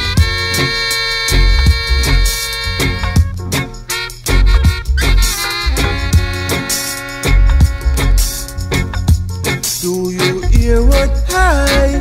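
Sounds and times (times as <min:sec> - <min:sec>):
instrumental reggae music: 0:00.0 - 0:12.0.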